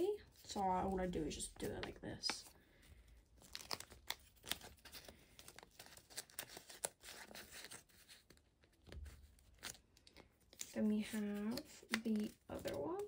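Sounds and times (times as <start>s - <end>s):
plastic sleeves crinkling: 0.0s - 13.0s.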